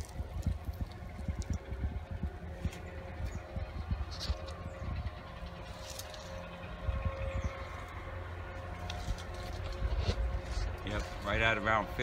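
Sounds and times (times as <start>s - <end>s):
faint constant hum: 0.0s - 12.0s
low outdoor rumble: 0.0s - 12.0s.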